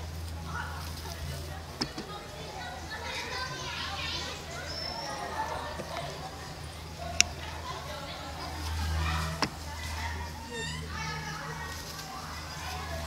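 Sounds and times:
people talking indistinctly: 0:00.0 - 0:13.0.

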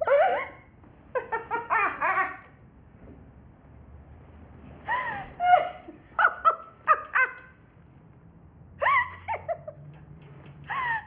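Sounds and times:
woman laughing: 0:00.0 - 0:00.6, 0:04.9 - 0:07.5, 0:08.8 - 0:09.9.

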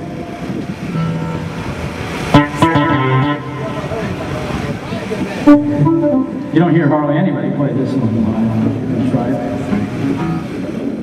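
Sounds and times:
steady noisy hiss: 0:00.0 - 0:11.0
short guitar notes: 0:00.9 - 0:10.7
short keyboard notes: 0:05.4 - 0:07.2.

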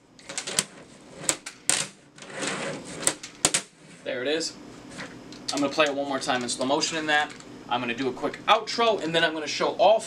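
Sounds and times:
wheels rolling on table: 0:00.2 - 0:04.0.

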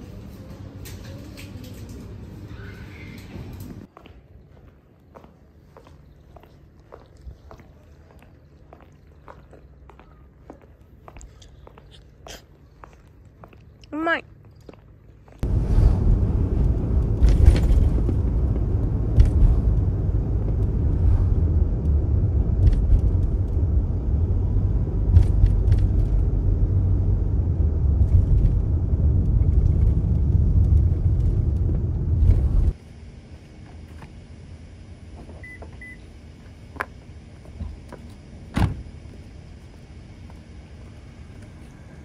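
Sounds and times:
road and engine rumble in cabin: 0:15.4 - 0:32.8.

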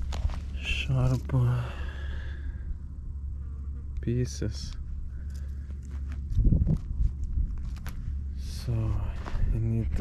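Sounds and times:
footsteps on sand: 0:00.0 - 0:01.5, 0:05.3 - 0:10.0
wind rumbling on microphone: 0:00.0 - 0:10.0.

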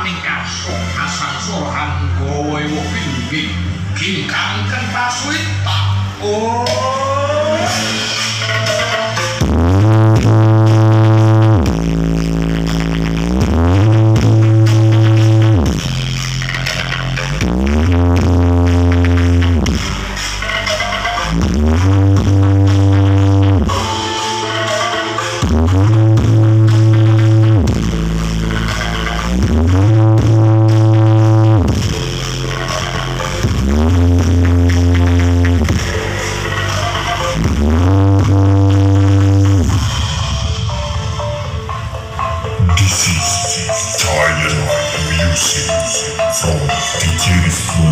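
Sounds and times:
loud electronic bass music: 0:00.0 - 0:47.9.

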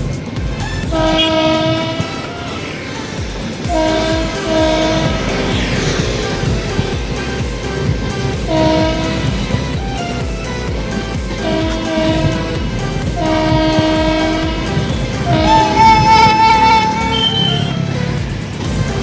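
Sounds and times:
train rumble and wheel clatter: 0:00.0 - 0:19.0
train horn blasts: 0:00.6 - 0:09.8, 0:11.3 - 0:18.0.

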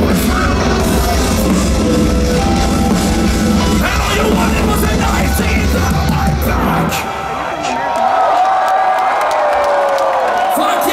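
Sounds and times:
crowd cheering and clapping: 0:04.8 - 0:10.9.

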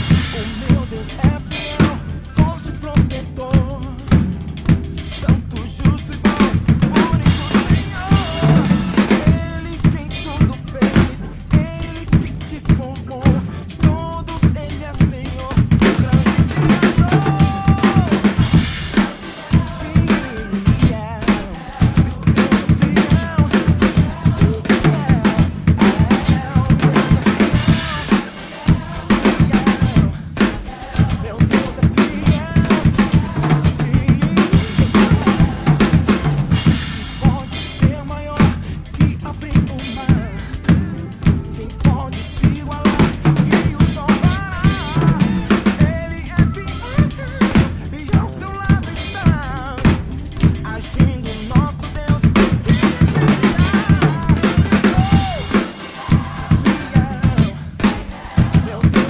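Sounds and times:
snare drum beats: 0:00.0 - 0:59.0.

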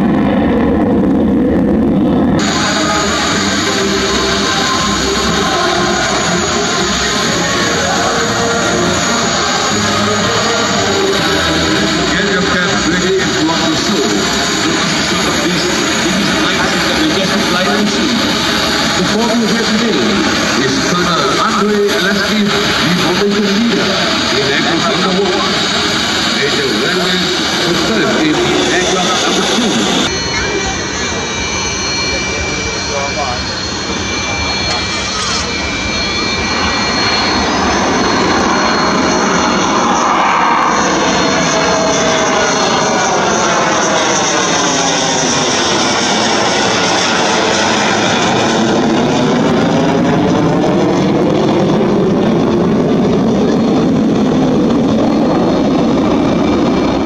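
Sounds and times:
jet fighter flying past: 0:00.0 - 0:57.0.

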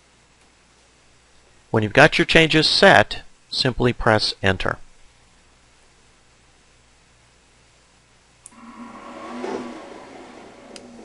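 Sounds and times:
cutting plotter motors whirring: 0:08.5 - 0:11.0.

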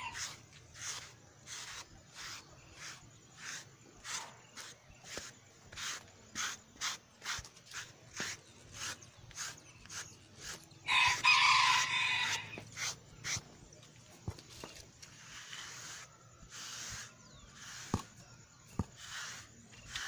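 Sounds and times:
brush scrubbing horse coat: 0:00.0 - 0:13.6, 0:14.2 - 0:20.0
rooster crowing: 0:10.8 - 0:12.6.

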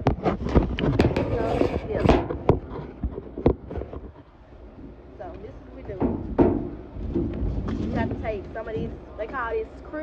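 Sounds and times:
cardboard rubbing and scraping: 0:00.0 - 0:04.2.

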